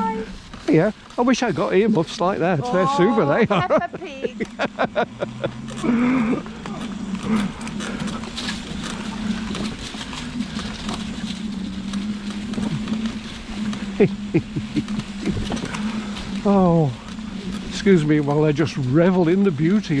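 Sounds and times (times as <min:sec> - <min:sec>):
leaves crackling under tyres: 0:00.0 - 0:20.0
low motor hum: 0:00.0 - 0:20.0.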